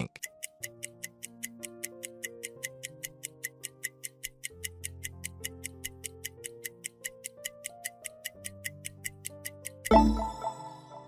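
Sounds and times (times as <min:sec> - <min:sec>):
rapid clock ticking: 0:00.0 - 0:11.0.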